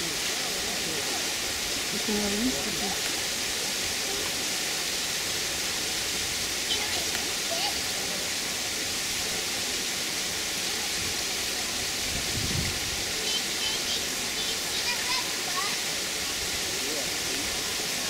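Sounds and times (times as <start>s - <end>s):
rushing outdoor background noise: 0.0s - 18.0s.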